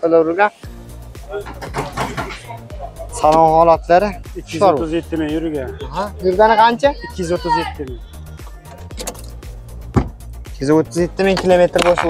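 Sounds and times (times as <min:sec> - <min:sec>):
background music with low beat: 0:00.6 - 0:12.0
car door opening: 0:01.4 - 0:02.6, 0:08.4 - 0:10.3
car door latch clicking: 0:08.6 - 0:10.2.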